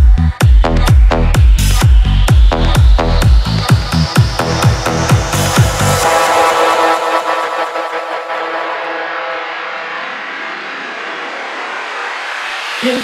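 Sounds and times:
held synth chords: 0.0s - 13.0s.

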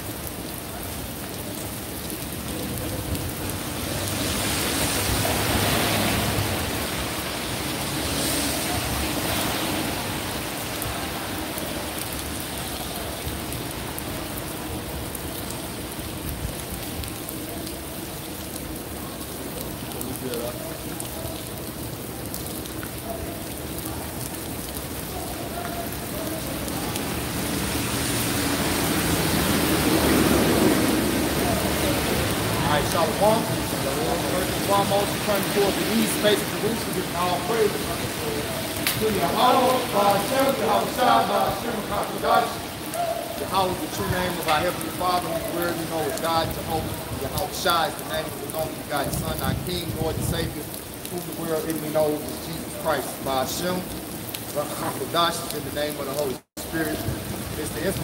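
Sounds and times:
rain on pavement: 0.0s - 58.0s
car tyres hissing on wet road: 2.5s - 14.6s, 25.4s - 49.1s.

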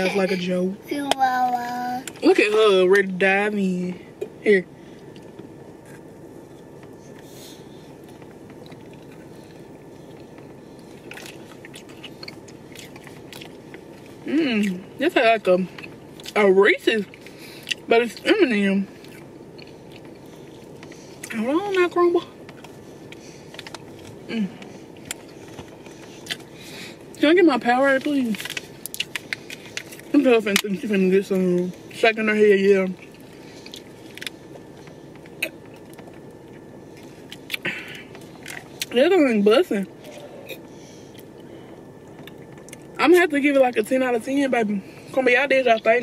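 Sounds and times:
car cabin background noise: 0.0s - 46.0s
chewing cookie: 7.9s - 14.8s, 22.5s - 26.6s.

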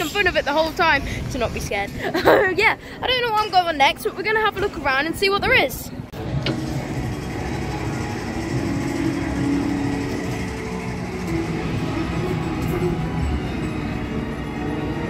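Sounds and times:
music playing: 6.0s - 15.0s
ride car rattling on track: 6.2s - 15.0s.

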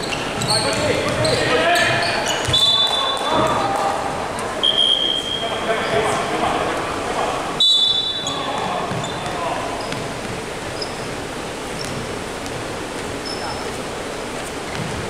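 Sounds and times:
voices: 0.0s - 14.9s
echoing sports hall noise: 0.0s - 15.0s
referee's whistle blast: 2.5s - 3.3s, 4.6s - 5.5s, 7.6s - 8.4s.

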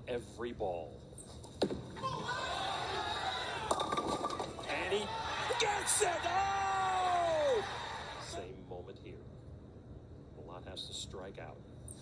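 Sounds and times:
crowd noise: 2.0s - 8.4s
bowling ball crashing into pins: 3.6s - 4.7s.

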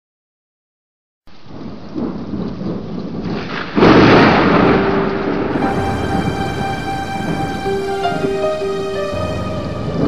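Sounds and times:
rain: 1.3s - 10.0s
loud thunderclap: 1.5s - 10.0s
rolling thunder: 1.5s - 10.0s.

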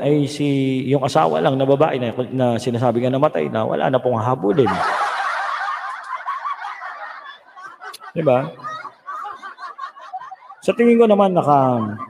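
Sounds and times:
thin laughter: 4.5s - 11.0s, 11.6s - 12.0s.

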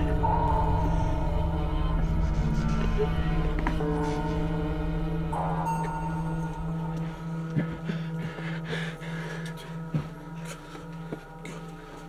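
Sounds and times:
droning background music: 0.0s - 12.0s.

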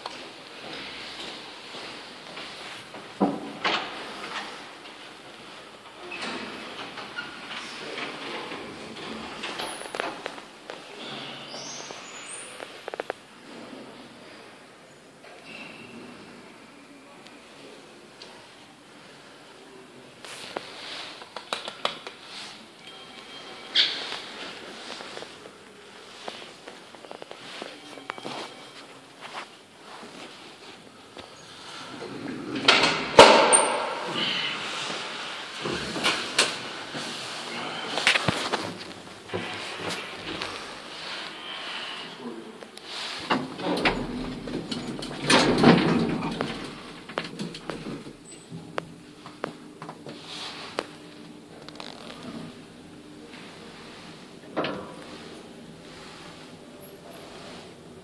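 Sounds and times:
elevator doors clattering: 43.4s - 48.7s.

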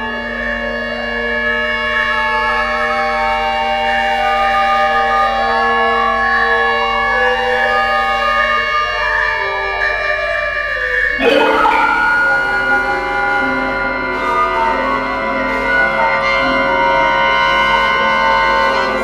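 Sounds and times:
bamboo wind instrument: 0.0s - 19.0s
erhu playing: 0.0s - 19.0s
low drone: 11.1s - 19.0s.

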